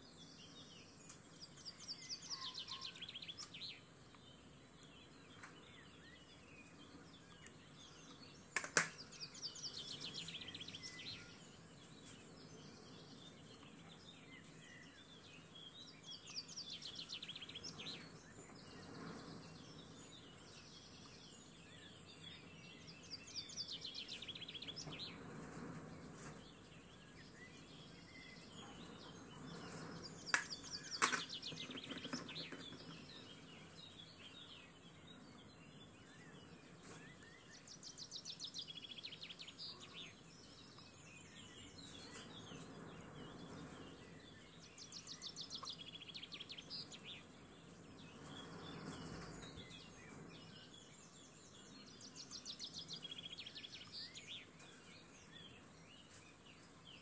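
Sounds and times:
bird chirping: 0:00.0 - 0:57.0
faint steady hiss: 0:00.0 - 0:57.0
sharp clicks: 0:08.6 - 0:09.0.

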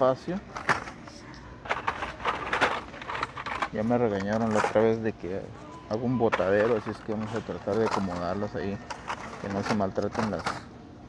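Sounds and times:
plastic cards rustling and clacking: 0:01.6 - 0:05.2, 0:06.0 - 0:10.7.

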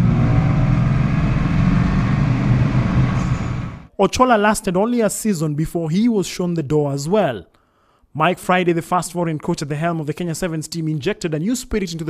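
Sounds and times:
car engine and tyre noise: 0:00.0 - 0:03.9.

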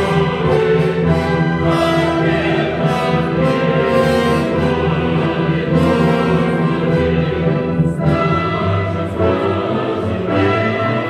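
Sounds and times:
opera chorus singing: 0:00.0 - 0:11.0
orchestra playing: 0:00.0 - 0:11.0.

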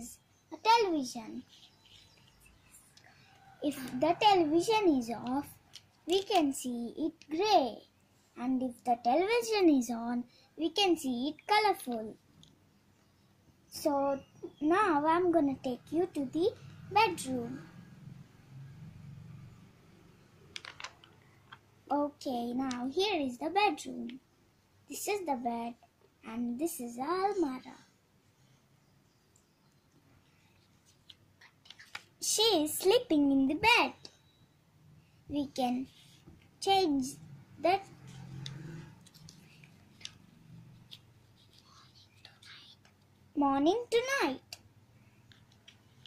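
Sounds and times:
paper page rustling: 0:20.6 - 0:21.2, 0:30.6 - 0:32.3, 0:38.0 - 0:41.8.

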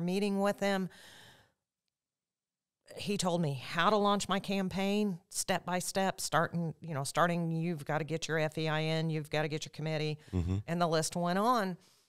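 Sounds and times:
faint breath: 0:00.9 - 0:01.6
speech: 0:02.9 - 0:11.8.

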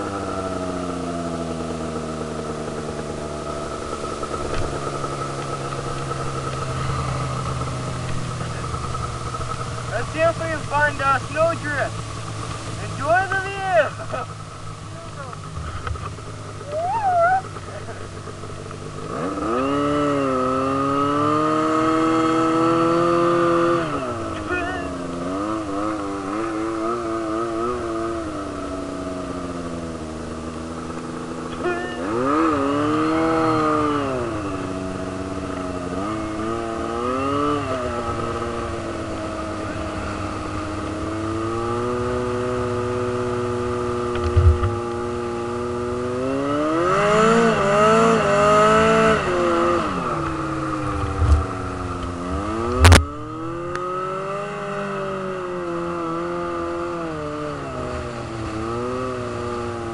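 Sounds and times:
snowmobile engine revving: 0:00.0 - 0:59.9
short thump: 0:44.2 - 0:44.8, 0:51.0 - 0:51.5, 0:52.7 - 0:53.2.

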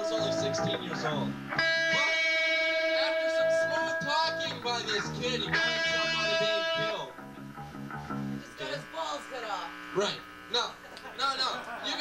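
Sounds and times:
man's voice through distorted pa: 0:00.0 - 0:02.2, 0:02.8 - 0:07.2
held guitar note: 0:00.0 - 0:10.4.

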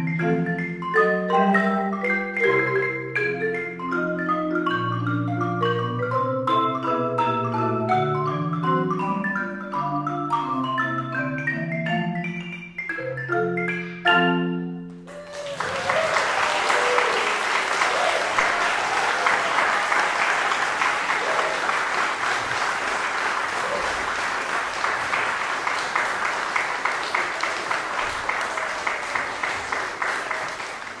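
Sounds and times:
audience applauding: 0:15.1 - 0:31.0.

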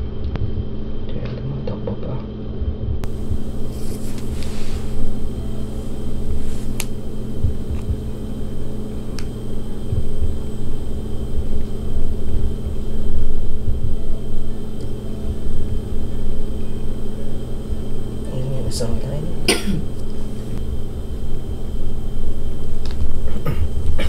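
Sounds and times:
steady low hum: 0:00.0 - 0:24.0
low rumbling: 0:02.4 - 0:24.0
person coughing: 0:19.5 - 0:19.9, 0:23.3 - 0:24.0.

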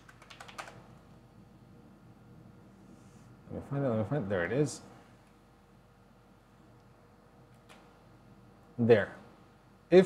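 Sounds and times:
faint keyboard typing: 0:00.0 - 0:01.1.

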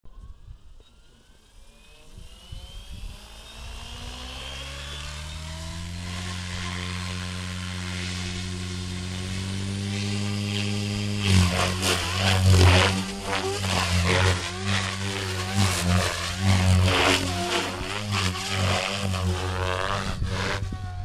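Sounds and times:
electric motor whine: 0:00.1 - 0:21.0
helicopter rotor hum: 0:00.1 - 0:21.0.

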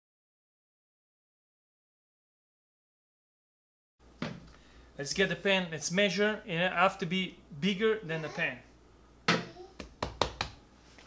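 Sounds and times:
pizza dough thumps and slaps: 0:09.8 - 0:10.6.

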